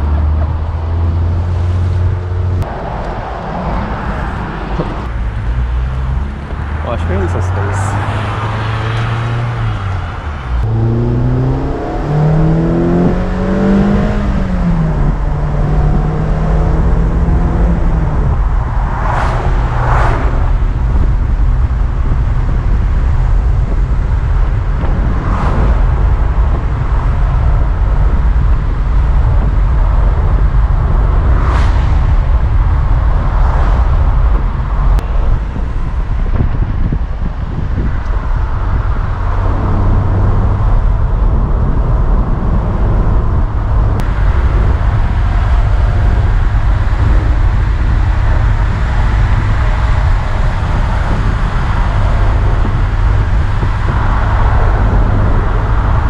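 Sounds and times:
car engine revving: 0:00.0 - 0:56.0
cars rushing past: 0:00.0 - 0:56.0
wind and road noise: 0:00.0 - 0:56.0.

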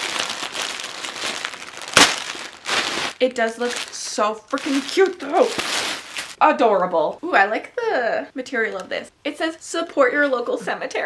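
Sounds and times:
loud plastic crackle: 0:00.0 - 0:06.4
plastic bag crinkling: 0:00.0 - 0:06.4.

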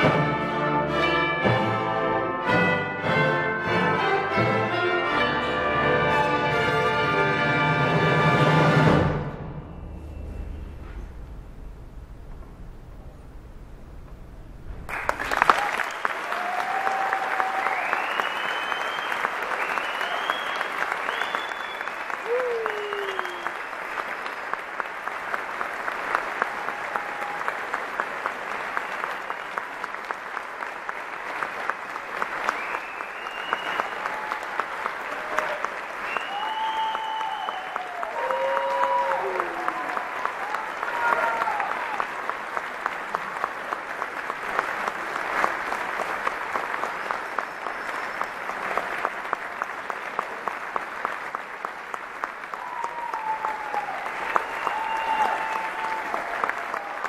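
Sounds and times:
audience applauding: 0:14.6 - 0:57.0
shouts and whoops of cheering: 0:15.4 - 0:23.7, 0:26.4 - 0:27.8, 0:33.5 - 0:42.2, 0:52.5 - 0:57.0.

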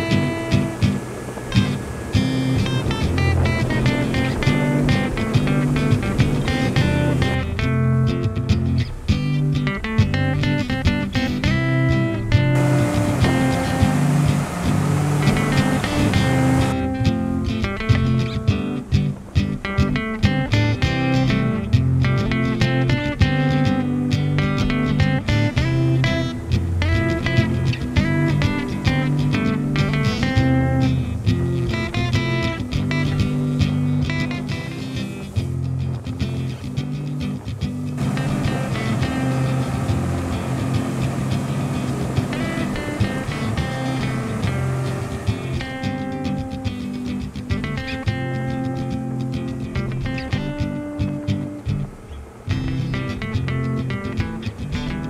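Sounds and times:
guitar music with steady beat: 0:00.0 - 0:55.0.

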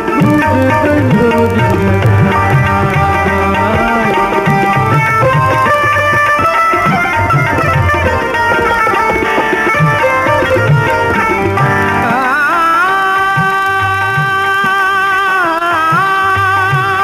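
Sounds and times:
harmonium held notes: 0:00.0 - 0:17.0
tabla drumming: 0:00.0 - 0:17.0.

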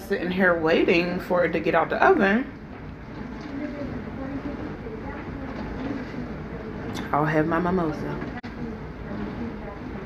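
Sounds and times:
faint indistinct voices: 0:02.5 - 0:10.0.

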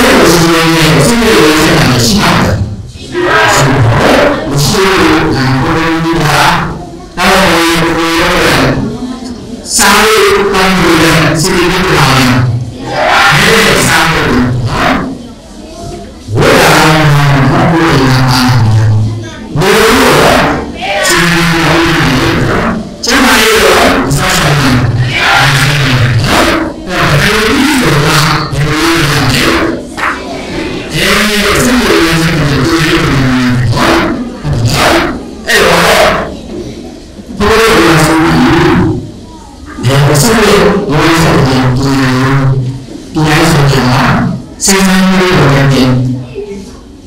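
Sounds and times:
man speaking into microphone: 0:00.0 - 0:15.2, 0:16.2 - 0:36.6, 0:37.2 - 0:46.7.

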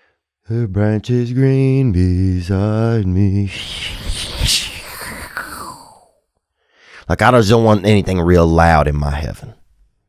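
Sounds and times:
man exhaling breathily: 0:03.5 - 0:07.0
short intake of breath: 0:03.5 - 0:07.1.

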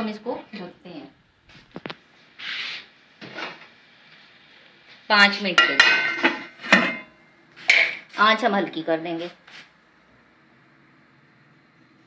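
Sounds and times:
short scraping rub: 0:02.4 - 0:02.9.

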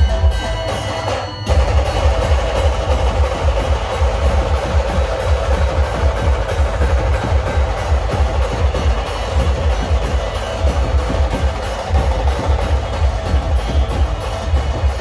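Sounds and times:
loud drumming through sound system: 0:00.0 - 0:15.0.

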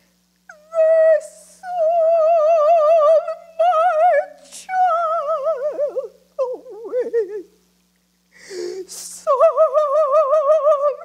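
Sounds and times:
woman singing with vibrato: 0:00.5 - 0:07.5, 0:08.8 - 0:11.0.

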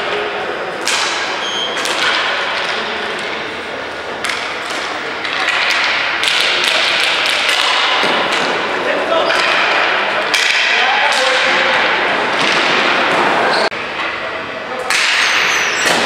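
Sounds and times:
sticks clacking and striking ball: 0:04.2 - 0:08.6, 0:09.3 - 0:12.9.

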